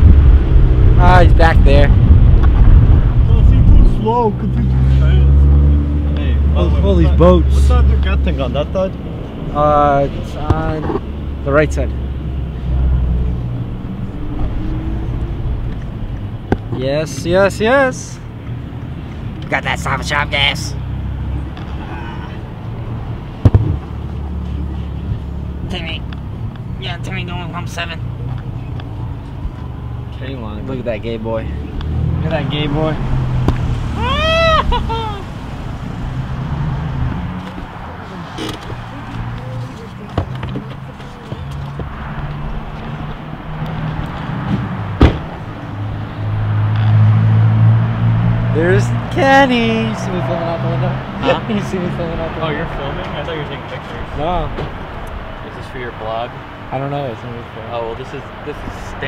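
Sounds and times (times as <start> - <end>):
car engine and road rumble: 0.0 - 59.0
car door slamming: 44.4 - 45.4
sharp knock: 44.5 - 45.4.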